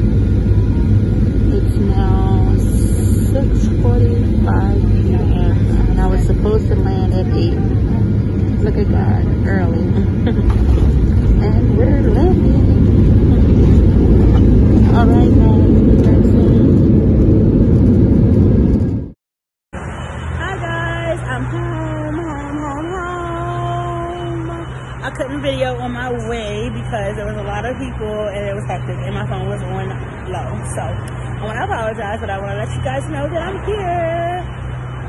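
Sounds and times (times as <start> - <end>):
quiet steady cabin hum: 0.0 - 19.1, 20.4 - 34.5
jet engine roar in cabin: 0.0 - 19.2, 19.8 - 35.0.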